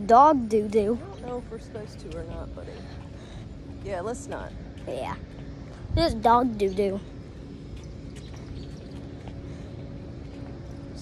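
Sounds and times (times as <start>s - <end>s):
faint even hum: 0.0s - 11.0s.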